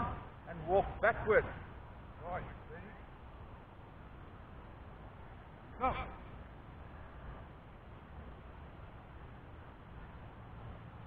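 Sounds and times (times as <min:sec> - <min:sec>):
faint low background noise: 0:00.0 - 0:11.0.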